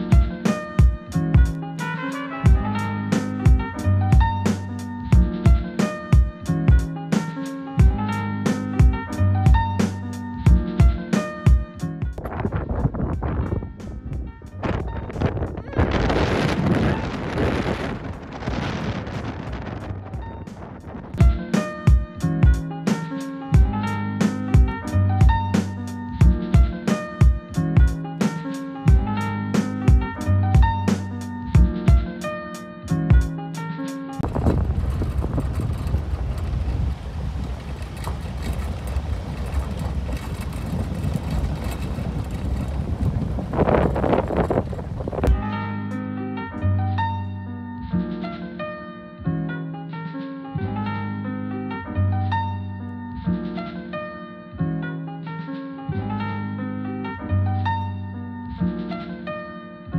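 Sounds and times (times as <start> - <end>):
wind buffeting microphone: 7.8 - 22.8, 34.2 - 45.8
tyre and engine rumble on gravel: 14.6 - 24.2, 34.2 - 45.6.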